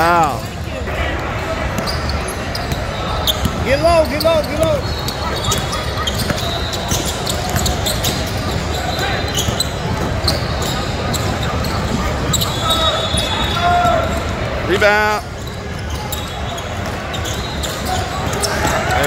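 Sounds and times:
voices calling out: 0.0s - 19.0s
basketball bouncing: 1.8s - 3.6s, 4.5s - 12.4s
shoe squeaks: 1.8s - 19.0s.

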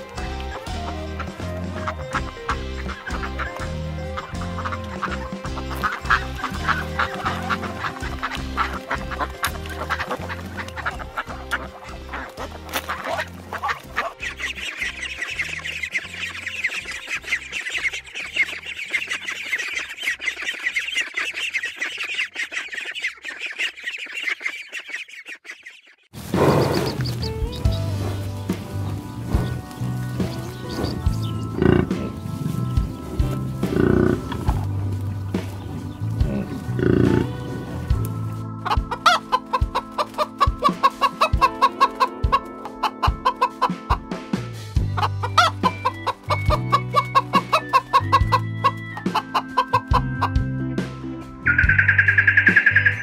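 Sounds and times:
music with steady beat: 0.0s - 14.5s, 26.9s - 53.0s
geese honking: 0.0s - 50.5s, 51.5s - 53.0s
ducks calling: 0.0s - 53.0s
low animal call: 33.3s - 34.7s, 35.8s - 37.7s.

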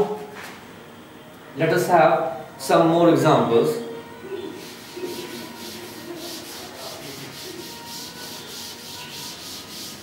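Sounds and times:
duster rubbing blackboard: 4.5s - 10.0s.

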